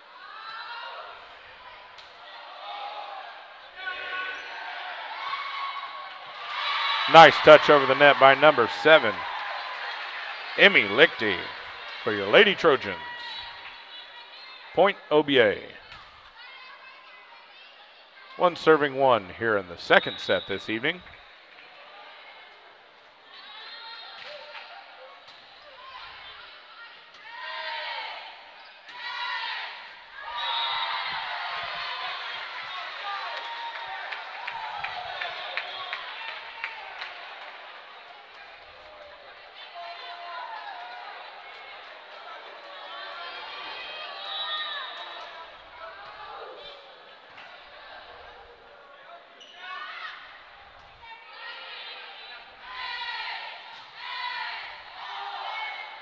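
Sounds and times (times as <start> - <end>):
players and spectators cheering: 2.2 - 15.8, 18.4 - 21.0, 29.0 - 48.9, 51.4 - 56.0.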